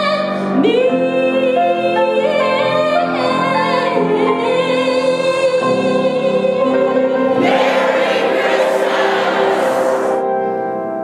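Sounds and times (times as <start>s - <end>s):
choral music sustained chord: 6.6s - 10.7s
bright hissy wash: 7.4s - 10.2s.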